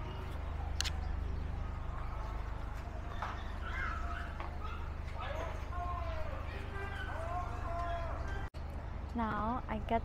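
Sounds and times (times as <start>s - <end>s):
people talking: 5.2s - 8.5s, 9.2s - 10.0s.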